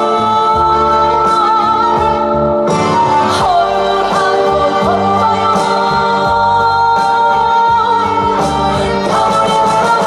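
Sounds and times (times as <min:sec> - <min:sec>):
instrumental accompaniment: 0:00.0 - 0:10.0
woman singing into a microphone: 0:00.0 - 0:10.0.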